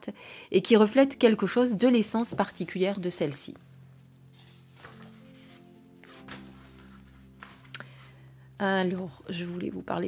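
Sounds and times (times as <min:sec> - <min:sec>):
soft background music chords: 0:00.0 - 0:10.0
paper pages turning: 0:04.3 - 0:08.2.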